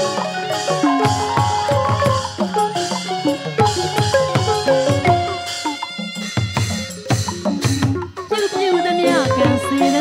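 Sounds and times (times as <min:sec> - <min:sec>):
tuned drums and gongs ensemble: 0:00.0 - 0:08.4.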